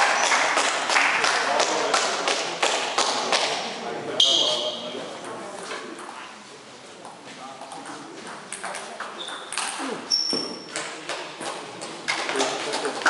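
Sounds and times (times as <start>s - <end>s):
ball bouncing: 7.0s - 12.8s
high squeaks: 9.2s - 10.8s.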